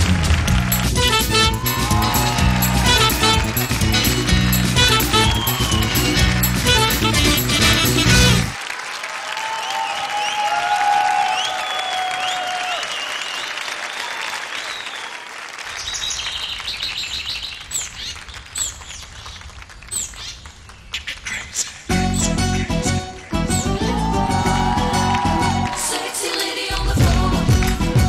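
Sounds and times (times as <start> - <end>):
music: 0.0 - 8.6, 21.9 - 28.0
audience applauding and cheering: 0.0 - 17.0, 23.5 - 28.0
shrill whistles: 0.9 - 3.7, 4.6 - 8.1, 9.5 - 15.2.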